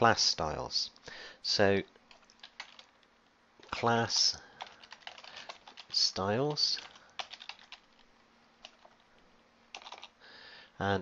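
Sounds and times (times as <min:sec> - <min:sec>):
faint keyboard keystrokes: 0:03.6 - 0:05.9, 0:06.5 - 0:09.0, 0:09.7 - 0:10.2.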